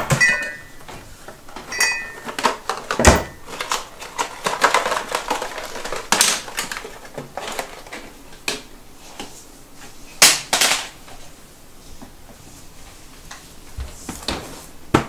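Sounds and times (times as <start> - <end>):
items clattering on counter: 0.0 - 8.7
cabinet door banging shut: 3.0 - 3.4.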